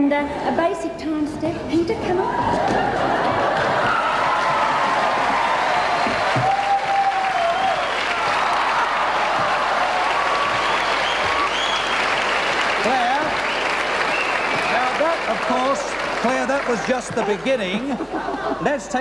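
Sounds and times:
audience applauding: 2.5 - 18.5.

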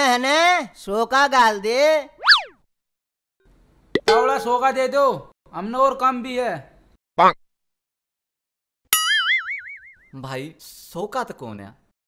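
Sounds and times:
comic boing sound effect: 4.0 - 4.4.

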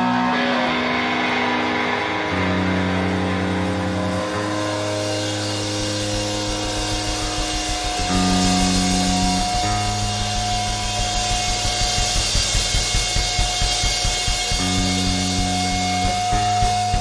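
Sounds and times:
rock band playing instrumental: 0.0 - 17.0.

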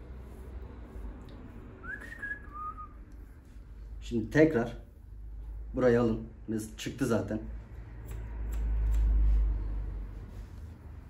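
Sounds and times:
person whistling: 1.8 - 3.0.

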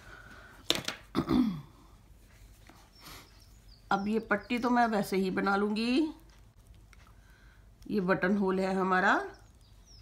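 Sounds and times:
faint room noise: 0.0 - 10.0
woman clearing throat: 1.1 - 1.8.

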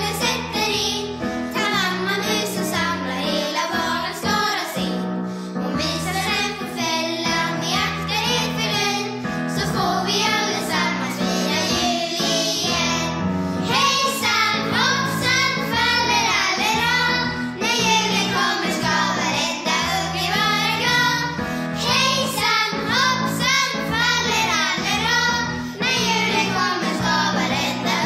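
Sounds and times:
children and woman singing: 0.0 - 4.9, 13.7 - 28.0.

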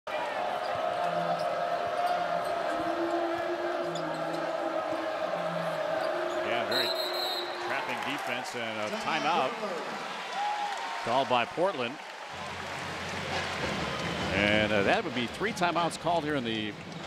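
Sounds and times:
referee's whistle: 6.6 - 7.7.

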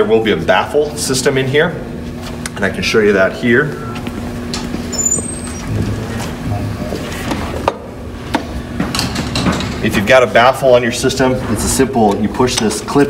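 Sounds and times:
low room hum: 0.0 - 13.0
footsteps: 3.9 - 7.7.

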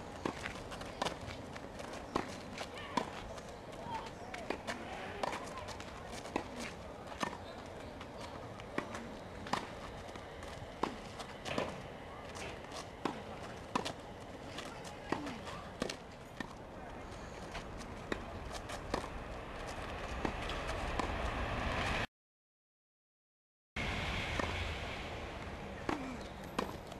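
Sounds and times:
tennis ball struck by racket: 18.0 - 19.1.

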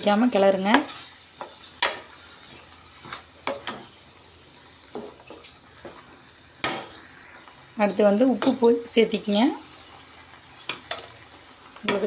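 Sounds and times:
paste sizzling: 0.0 - 12.0
spoon stirring and scraping pan: 0.0 - 12.0.

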